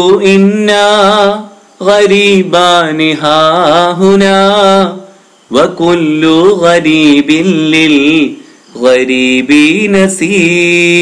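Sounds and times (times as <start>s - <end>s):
man chanting melodic recitation: 0.0s - 11.0s.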